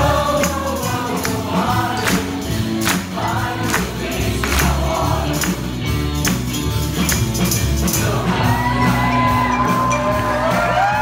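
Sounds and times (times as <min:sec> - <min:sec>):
cast singing together: 0:00.0 - 0:05.8, 0:07.8 - 0:09.2
upbeat pop accompaniment: 0:00.0 - 0:11.0.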